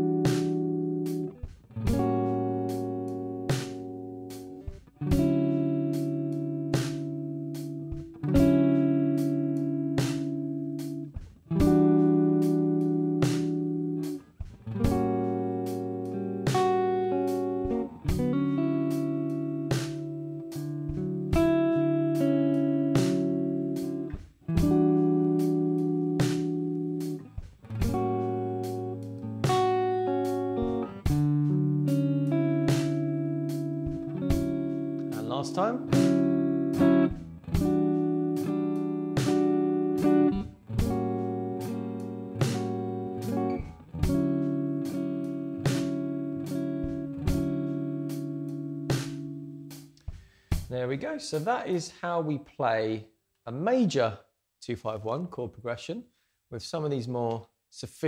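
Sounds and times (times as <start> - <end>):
clean electric guitar chords: 0.0 - 49.9
slow drum backing: 0.3 - 2.8, 3.5 - 5.6, 10.0 - 12.0, 13.2 - 13.6, 14.4 - 15.2, 16.5 - 18.4, 23.0 - 25.5, 26.2 - 29.8, 30.6 - 31.6, 32.7 - 34.7, 35.9 - 38.0, 39.2 - 40.2, 48.9 - 50.8.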